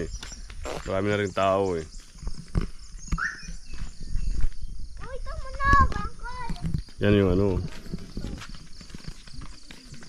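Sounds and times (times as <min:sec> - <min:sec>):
short high chirp: 0:03.1 - 0:03.6.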